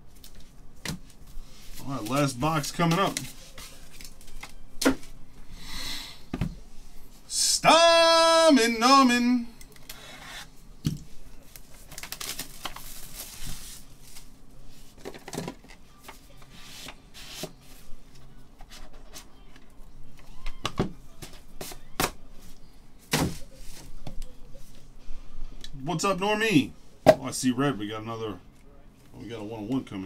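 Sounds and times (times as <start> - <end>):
shrink wrap crinkling and peeling: 0.1 - 4.6, 11.4 - 14.4.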